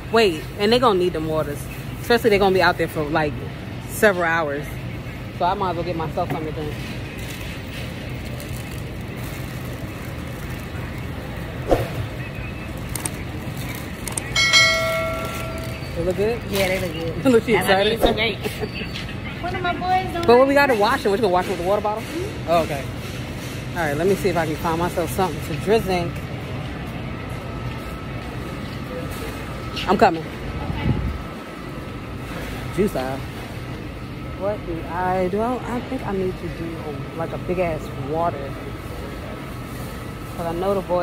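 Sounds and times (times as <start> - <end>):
low supermarket hum: 0.0 - 41.0
bell-like chime: 14.4 - 16.0.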